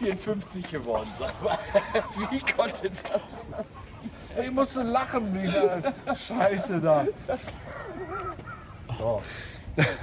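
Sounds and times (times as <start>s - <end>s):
man laughing hard: 1.1s - 4.0s, 5.4s - 8.8s, 9.8s - 10.0s.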